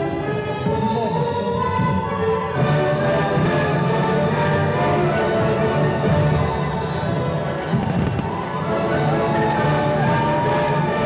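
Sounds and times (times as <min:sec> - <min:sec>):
loud orchestral music: 0:00.0 - 0:11.0
fireworks cracking and popping: 0:07.8 - 0:08.6.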